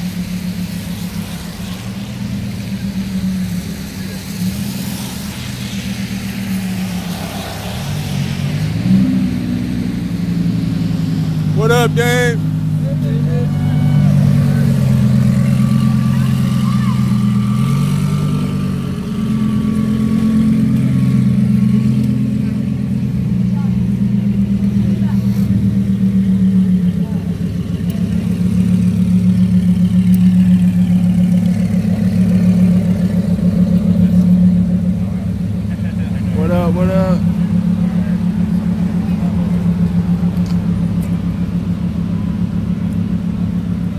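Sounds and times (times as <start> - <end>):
car engine droning at low revs: 0.0 - 43.9.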